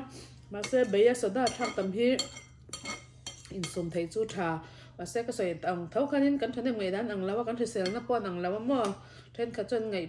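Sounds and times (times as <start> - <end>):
woman's voice: 0.0 - 2.4, 3.5 - 10.0
spoon clinking against ceramic bowl: 0.6 - 3.8, 7.8 - 8.1.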